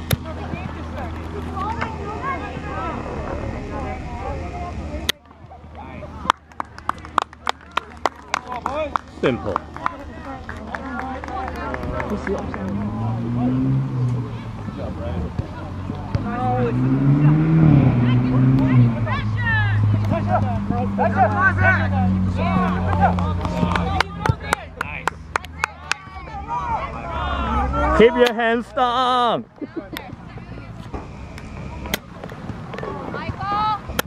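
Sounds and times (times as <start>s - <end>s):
voices shouting and calling: 0.0s - 6.2s, 8.4s - 34.0s
vehicle engine humming: 0.0s - 34.0s.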